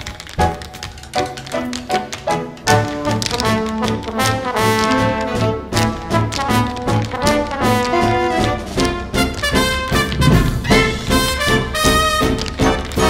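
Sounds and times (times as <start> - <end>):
brass swing band music: 1.5 - 13.0.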